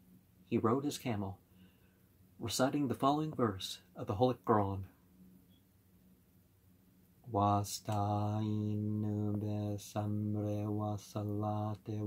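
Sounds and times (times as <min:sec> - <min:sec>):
man chanting on a low pitch: 0:07.3 - 0:12.0.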